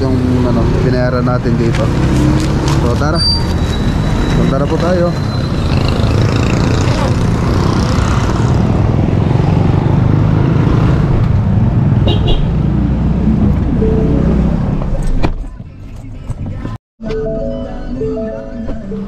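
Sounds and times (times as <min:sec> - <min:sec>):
street traffic rumble: 0:00.0 - 0:16.8.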